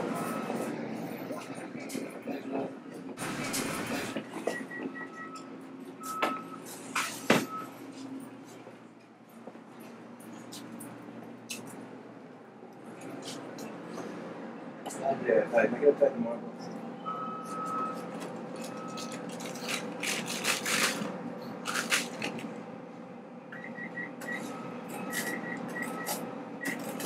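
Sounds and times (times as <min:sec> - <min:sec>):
short electronic beeps: 0:23.6 - 0:26.8.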